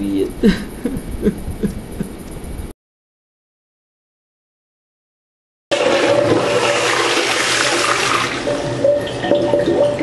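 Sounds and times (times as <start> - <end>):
toilet flushing: 5.7 - 10.0
water gurgling and trickling: 5.7 - 10.0.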